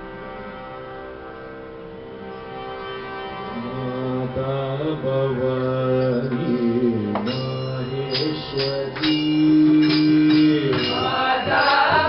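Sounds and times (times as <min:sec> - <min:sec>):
harmonium reed notes: 0:00.0 - 0:12.0
man singing devotional chant: 0:03.5 - 0:12.0.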